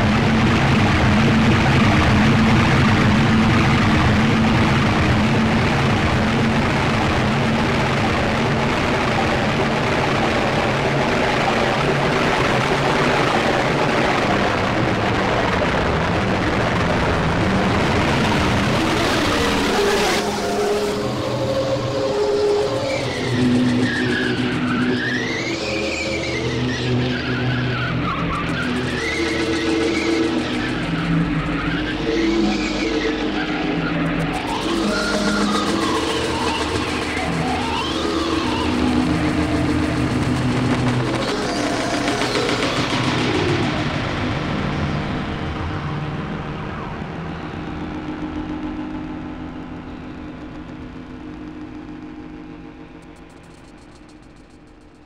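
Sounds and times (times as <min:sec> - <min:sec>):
harsh electronic noise: 0:00.0 - 0:55.0
siren-like electronic tone sweeping: 0:18.2 - 0:55.0
low held electronic tones: 0:28.0 - 0:55.0.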